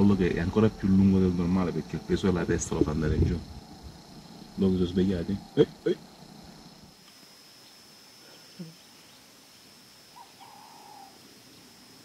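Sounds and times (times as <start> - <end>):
faint bird call: 10.1 - 11.6.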